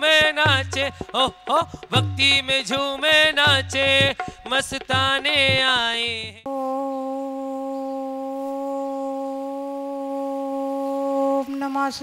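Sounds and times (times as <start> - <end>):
woman humming a long note: 6.5 - 11.7.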